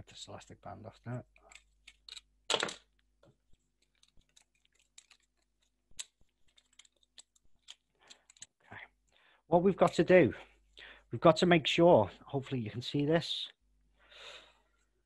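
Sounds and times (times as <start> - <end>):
small tools clicking and tapping: 1.3 - 8.6
tools clattering: 3.8 - 5.7.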